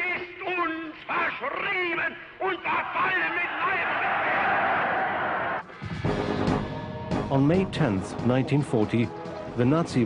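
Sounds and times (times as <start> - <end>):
man shouting oratory: 0.0 - 4.4.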